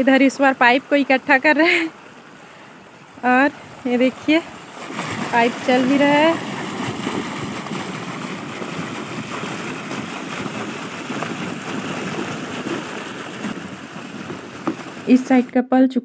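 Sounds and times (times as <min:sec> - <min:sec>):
water gushing from pipe: 0:00.0 - 0:15.5.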